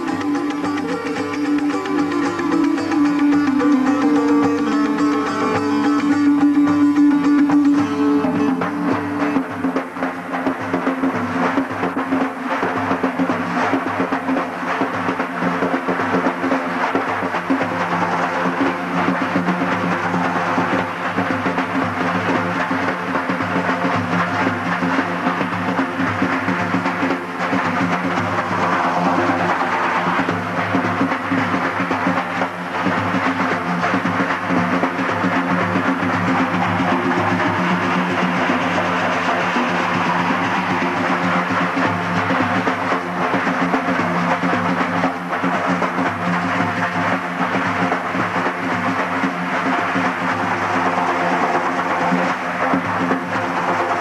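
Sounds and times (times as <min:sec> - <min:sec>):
long-necked lute: 0:00.0 - 0:54.0.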